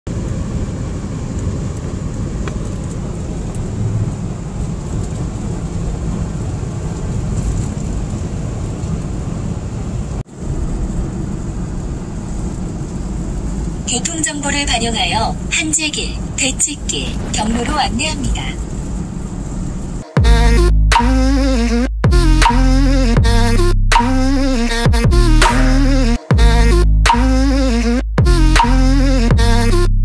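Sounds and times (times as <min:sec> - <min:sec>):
car road and engine noise: 0:00.1 - 0:30.0.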